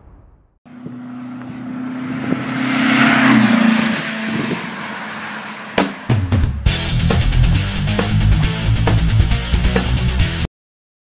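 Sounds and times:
vehicle engine passing by: 0.7s - 7.4s
sharp hit: 2.4s - 7.6s.

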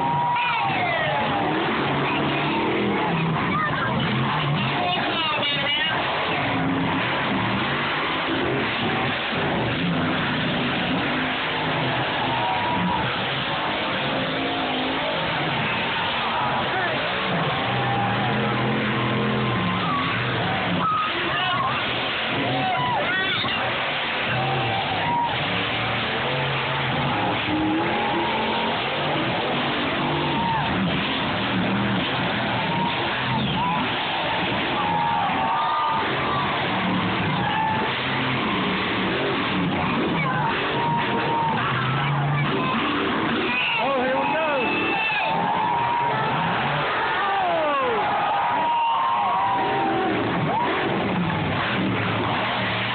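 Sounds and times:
crowd noise: 0.0s - 52.9s
monster truck engines revving: 0.0s - 52.9s.

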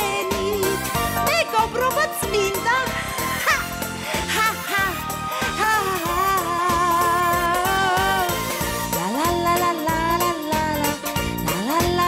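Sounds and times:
woman singing into a microphone: 0.0s - 3.7s, 4.3s - 12.0s
instrumental accompaniment with beat: 0.0s - 12.0s.

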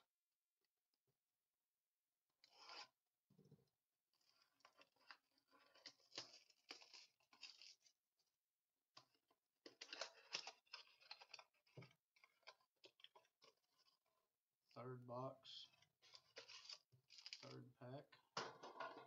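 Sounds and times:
crackly handling noise: 4.2s - 8.0s, 8.9s - 14.3s, 15.6s - 19.0s.

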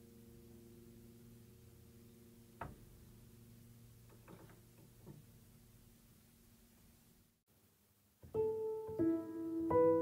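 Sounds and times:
piano notes: 8.2s - 10.0s.

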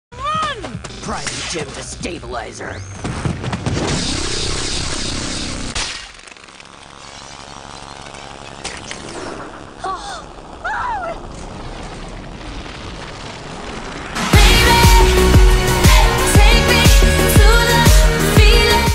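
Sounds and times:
low rumble: 7.6s - 18.6s.

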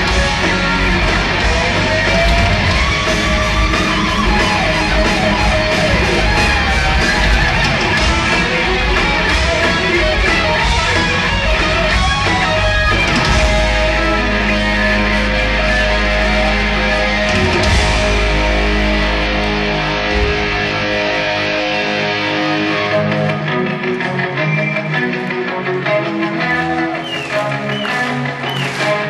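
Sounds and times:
bass and drums: 0.0s - 25.4s
distorted electric guitars: 0.0s - 29.0s.

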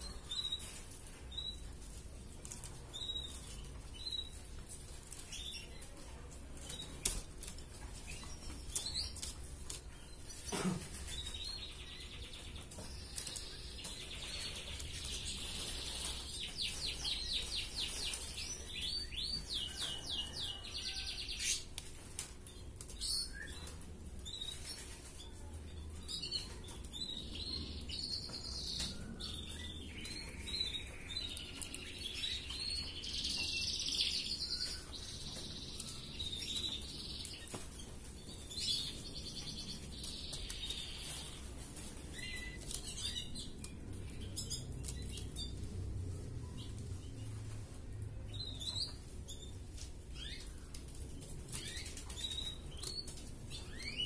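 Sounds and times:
canary trilling song: 0.0s - 5.9s, 6.6s - 47.4s, 48.2s - 54.0s.

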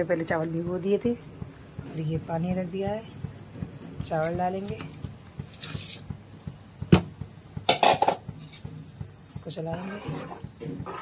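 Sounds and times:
metal bowl knocking on pot: 6.8s - 11.0s.

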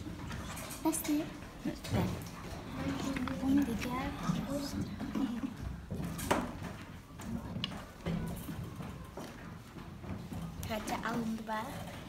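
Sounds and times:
faint murmuring voices: 1.6s - 6.3s
handling noise at a table: 5.0s - 12.0s.

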